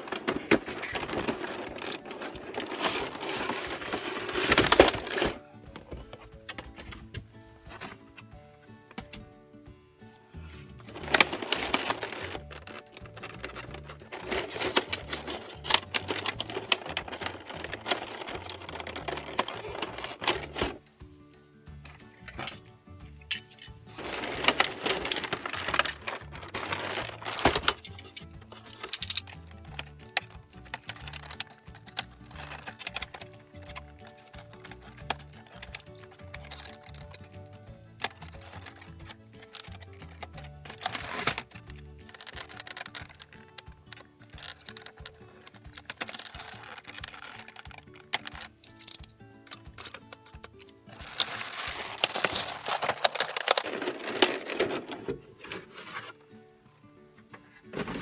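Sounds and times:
plastic wrapping crinkling: 0:00.0 - 0:05.4, 0:10.8 - 0:20.8, 0:23.9 - 0:56.2
background music: 0:00.0 - 0:58.0.

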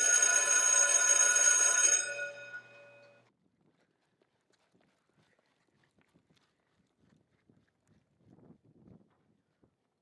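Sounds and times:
electric school bell ringing: 0:00.0 - 0:03.2.

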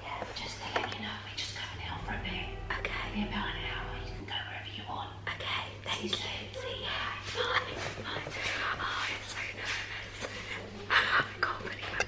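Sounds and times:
woman whispering: 0:00.0 - 0:07.4, 0:08.1 - 0:12.0
quiet music: 0:00.3 - 0:09.8.

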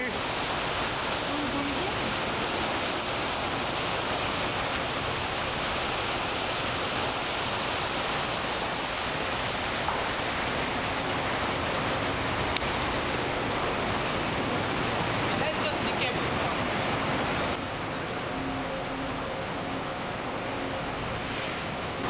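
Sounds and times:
ship wake churning water: 0:00.0 - 0:22.0.

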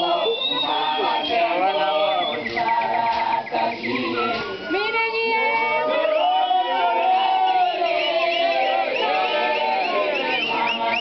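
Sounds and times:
group singing: 0:00.0 - 0:11.0.

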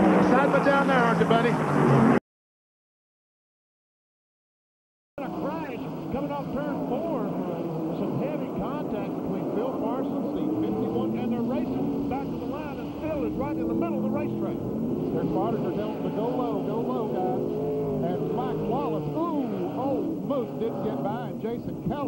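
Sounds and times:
race car engines: 0:00.0 - 0:02.2, 0:05.2 - 0:22.0.

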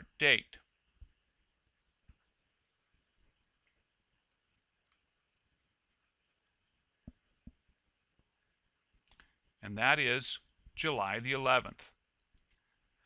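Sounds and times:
computer keyboard clicks: 0:03.3 - 0:05.4.

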